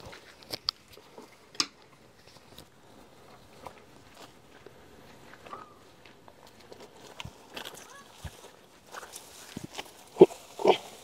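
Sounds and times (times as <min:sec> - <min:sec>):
grass being cut and rustling: 0:06.9 - 0:11.0
pig grunting: 0:10.2 - 0:11.0.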